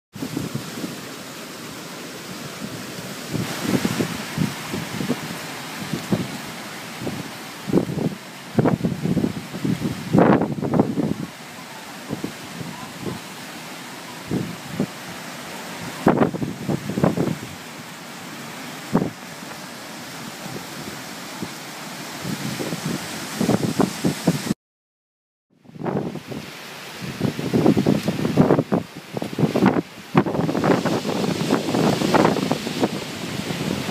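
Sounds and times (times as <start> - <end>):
wind gusts buffeting microphone: 0.1 - 1.1, 2.3 - 11.4, 12.0 - 13.5, 14.1 - 24.6, 25.6 - 33.9
wind rushing through trees: 0.1 - 24.6, 25.5 - 33.9.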